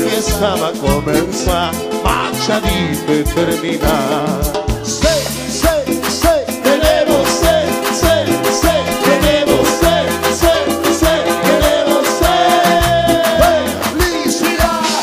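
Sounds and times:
latin dance band music: 0.0s - 15.0s.

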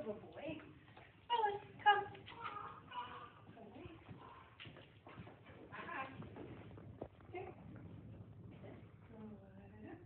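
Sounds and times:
footsteps on tiled floor: 0.0s - 10.0s.

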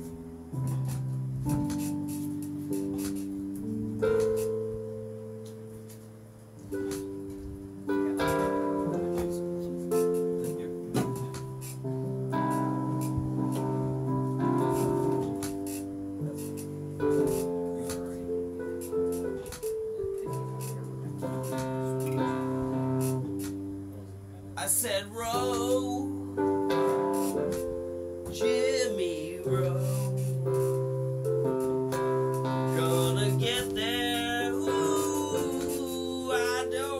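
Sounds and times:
keyboard playing sustained chords: 0.0s - 36.9s.

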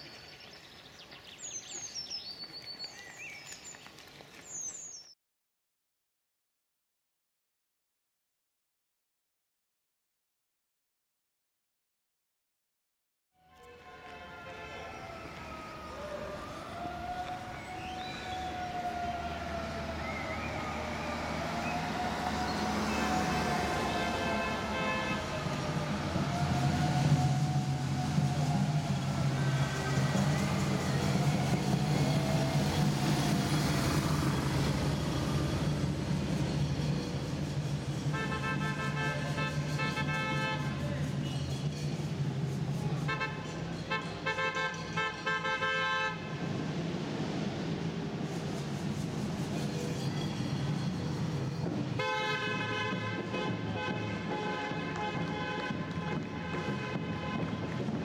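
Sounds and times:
passing engines humming: 13.9s - 58.0s
siren wailing: 14.3s - 35.6s
horn blasts in short bursts: 23.7s - 25.5s, 38.1s - 40.9s, 52.0s - 57.8s.

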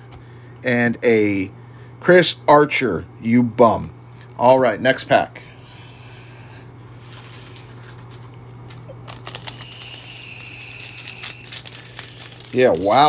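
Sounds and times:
foil wrapper crinkling: 6.9s - 13.0s.

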